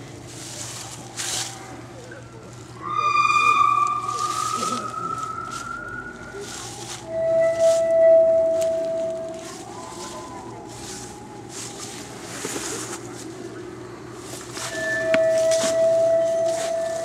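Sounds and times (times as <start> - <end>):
person holding high notes: 0.9 - 17.0.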